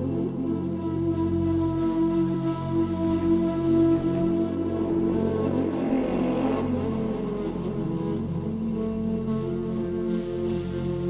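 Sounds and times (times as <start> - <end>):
sustained synth tones: 0.0 - 11.0
electronic house music: 3.0 - 9.5
rushing noise sweep: 3.2 - 8.9.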